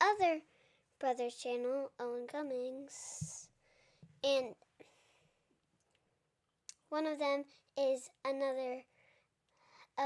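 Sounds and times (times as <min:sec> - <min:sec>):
child speaking: 0:00.0 - 0:03.5, 0:04.2 - 0:04.6, 0:06.7 - 0:08.9.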